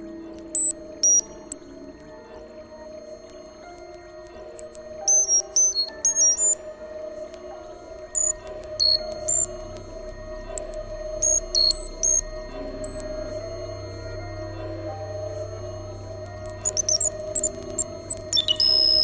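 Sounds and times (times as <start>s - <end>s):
high-pitched synth bleeps: 0.0s - 19.0s
low hum: 0.0s - 19.0s
steady droning tone: 0.0s - 19.0s.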